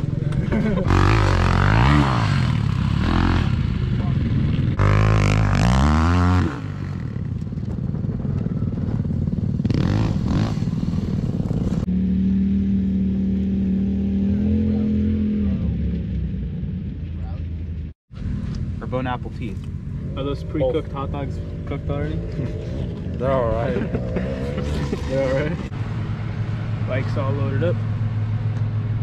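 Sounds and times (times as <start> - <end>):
vehicle engines revving: 0.0 - 29.0.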